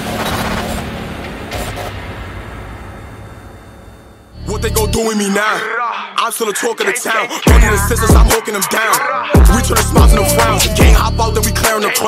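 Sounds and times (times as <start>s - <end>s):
crackling rumbling noise: 0.0s - 4.4s.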